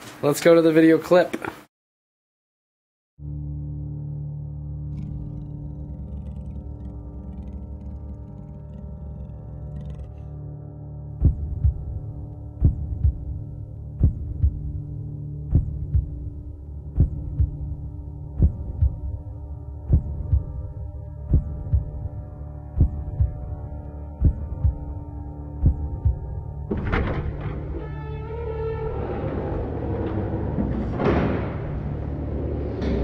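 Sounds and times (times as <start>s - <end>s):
low drone: 3.2s - 33.0s
heartbeat-like double thump: 11.2s - 12.0s, 12.6s - 13.4s, 14.0s - 14.8s, 15.4s - 16.3s, 16.9s - 19.2s, 19.8s - 20.6s, 21.2s - 22.1s, 22.8s - 23.5s, 24.2s - 24.9s, 25.6s - 26.4s.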